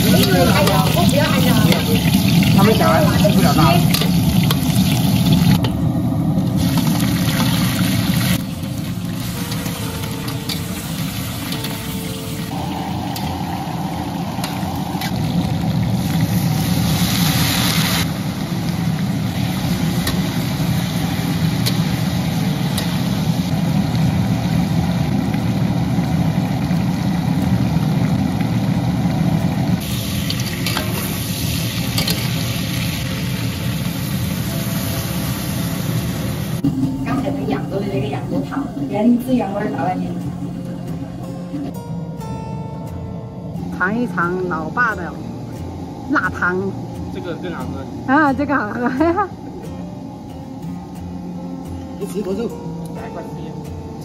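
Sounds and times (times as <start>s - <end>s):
food sizzling in hot oil: 0.0s - 39.9s.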